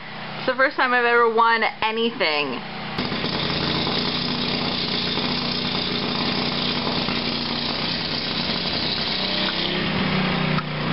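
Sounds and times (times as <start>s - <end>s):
small engine running: 3.0s - 10.9s.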